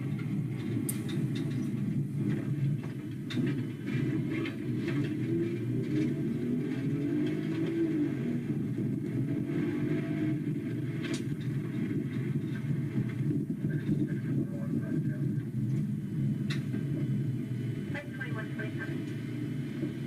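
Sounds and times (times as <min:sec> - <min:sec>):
engine and road noise rumble: 0:00.0 - 0:20.0.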